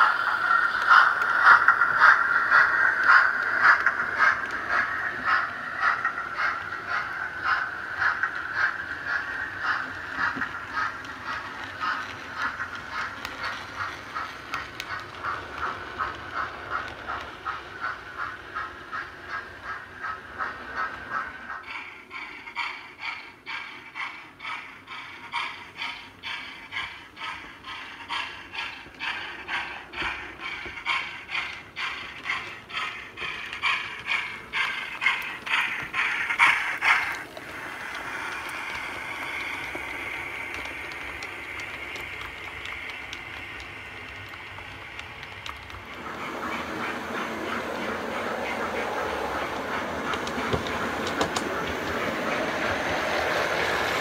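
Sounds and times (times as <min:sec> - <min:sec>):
model train running: 0:00.0 - 0:54.0.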